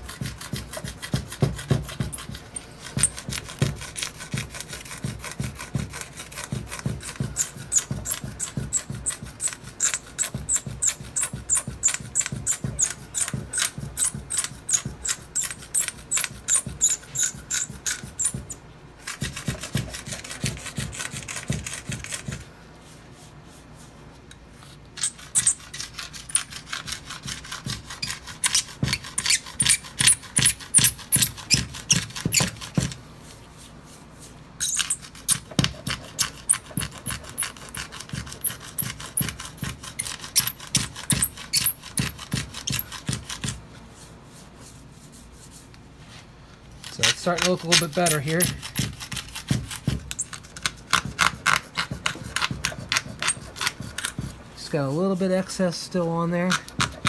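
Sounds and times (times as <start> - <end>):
razor blade scraping stone: 0.0 - 22.4, 25.0 - 33.0, 34.6 - 43.6, 46.8 - 57.0.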